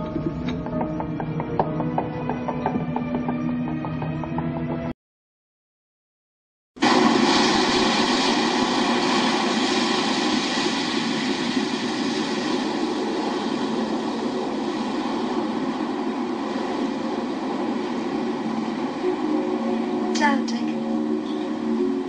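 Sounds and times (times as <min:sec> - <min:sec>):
wind and sea water rushing: 0:06.8 - 0:22.0.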